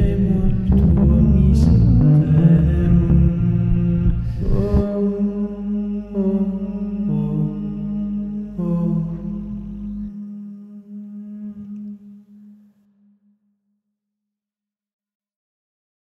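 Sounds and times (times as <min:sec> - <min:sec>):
heavy low rumble: 0:00.0 - 0:10.2
drone music tones: 0:00.0 - 0:12.9.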